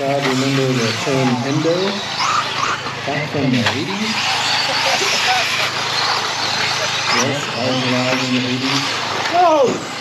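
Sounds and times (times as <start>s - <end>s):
rc cars whirring: 0.0s - 10.0s.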